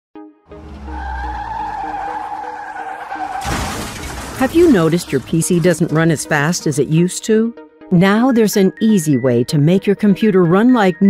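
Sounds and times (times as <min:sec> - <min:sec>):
music: 0:00.2 - 0:11.0
tyre squeal: 0:00.6 - 0:03.8.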